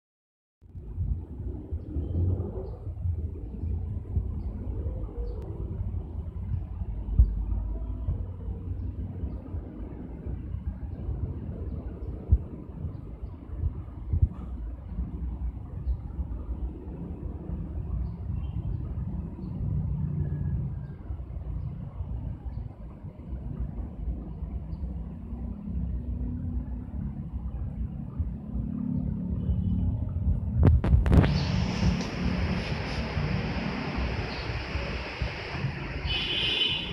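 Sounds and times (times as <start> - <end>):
low rumbling noise: 0.6 - 36.9
loud rush: 30.6 - 36.9.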